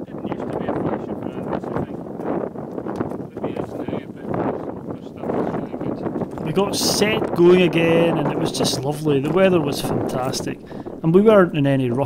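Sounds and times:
indistinct voices: 6.4 - 12.0.

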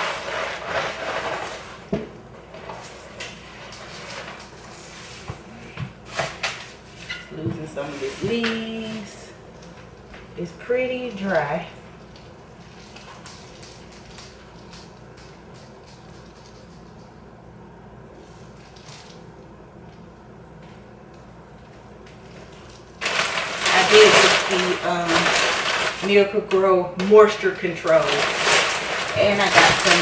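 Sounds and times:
leaves rustling and light knocks: 27.8 - 30.0.

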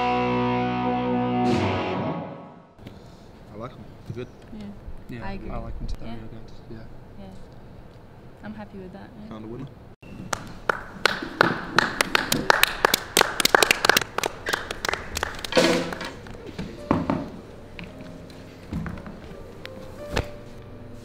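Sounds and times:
people clapping: 10.2 - 16.4.

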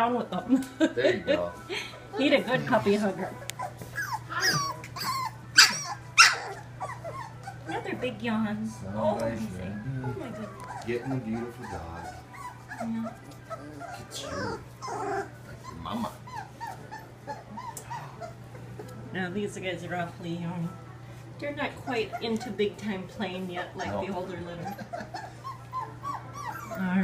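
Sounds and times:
puppy crying: 1.3 - 8.2, 8.9 - 18.6, 21.8 - 23.0, 23.7 - 27.0
soft puppy noises: 1.4 - 19.2, 20.7 - 27.0.

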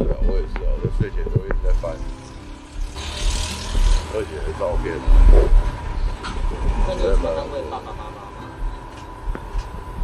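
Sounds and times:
steady low traffic rumble: 0.0 - 10.0
vehicle passing with hiss: 2.0 - 7.9.

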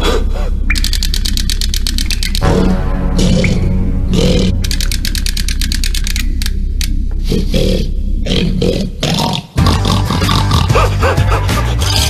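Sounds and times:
loud dense rumble: 0.0 - 9.1
chattering teeth toy clacking: 0.7 - 2.5, 4.6 - 7.0
low growl: 7.2 - 10.8.

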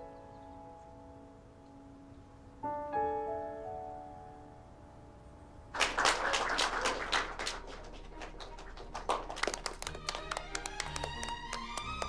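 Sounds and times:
soft piano notes: 0.0 - 5.8
people applauding: 5.8 - 12.0.

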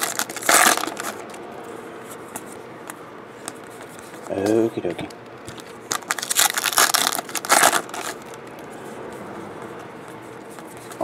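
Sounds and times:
foil wrapper tearing and crinkling: 0.0 - 1.2, 5.6 - 8.4.

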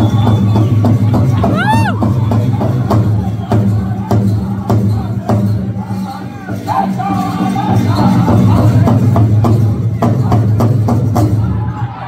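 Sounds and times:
big drum steady beat: 0.0 - 11.7.

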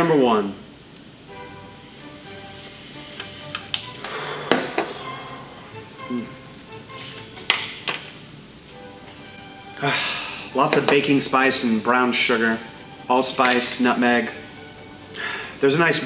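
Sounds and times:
soft background music: 0.0 - 16.0.

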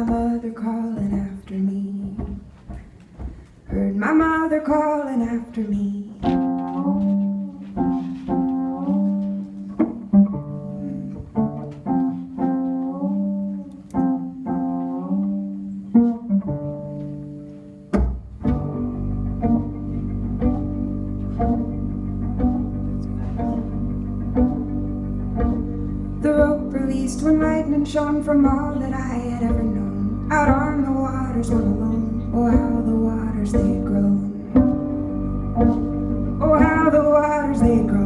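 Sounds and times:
fiddle: 0.0 - 38.0
picked string notes: 0.0 - 38.0
bowed low drone: 18.5 - 38.0.

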